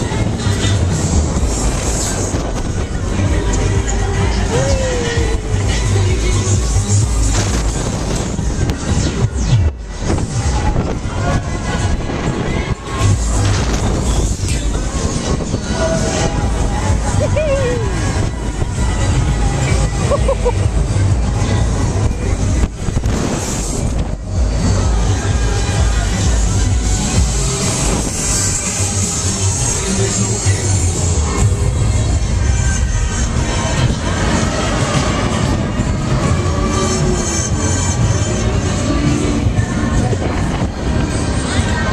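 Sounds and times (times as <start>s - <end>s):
loud fairground music: 0.0s - 41.9s
thrill ride rushing and rumbling: 0.0s - 41.9s.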